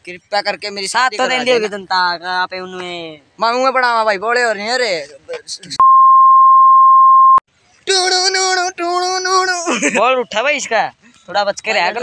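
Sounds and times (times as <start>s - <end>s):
censor bleep: 5.8s - 7.4s.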